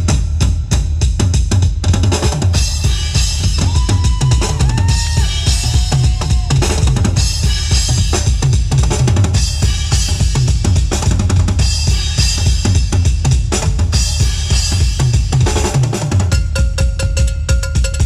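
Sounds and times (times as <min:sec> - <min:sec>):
drum kit playing a beat: 0:00.0 - 0:18.0.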